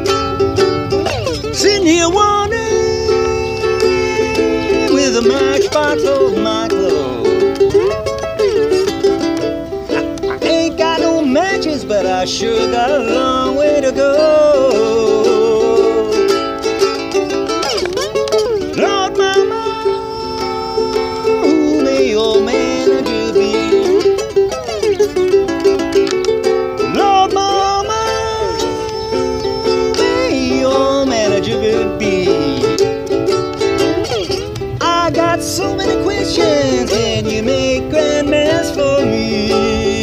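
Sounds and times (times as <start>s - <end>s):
slide ukulele blues: 0.0s - 40.0s.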